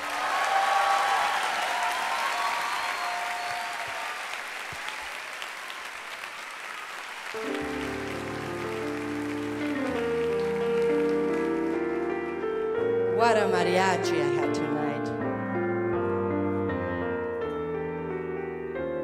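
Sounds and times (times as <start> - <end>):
audience applauding: 0.0 - 12.6
sustained instrumental chords: 7.4 - 18.7.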